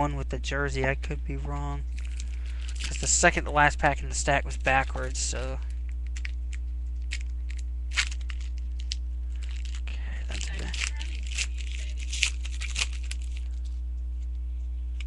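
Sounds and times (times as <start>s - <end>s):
low electrical hum: 0.0s - 15.0s
wrapper tearing and crinkling: 1.9s - 3.2s, 6.0s - 13.8s.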